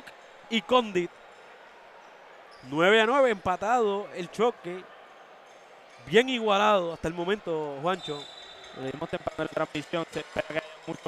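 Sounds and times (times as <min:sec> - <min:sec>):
man talking: 0:00.5 - 0:01.1.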